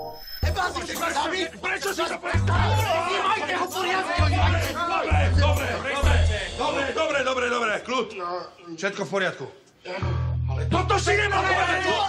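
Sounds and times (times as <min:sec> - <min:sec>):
men shouting: 0:00.7 - 0:07.4, 0:10.8 - 0:12.0
music with heavy bass: 0:02.3 - 0:03.1, 0:04.2 - 0:06.7.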